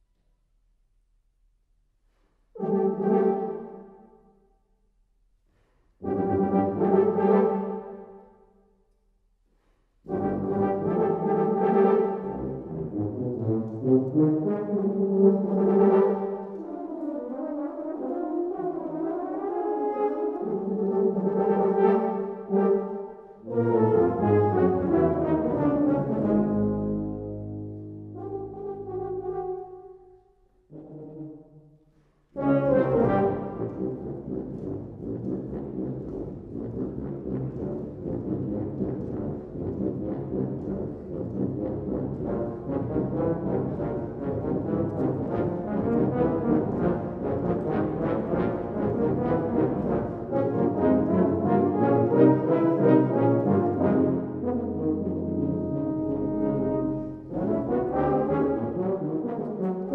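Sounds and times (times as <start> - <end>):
brass ensemble playing chords: 2.6 - 4.1, 6.0 - 8.2, 10.1 - 31.6, 32.4 - 59.9.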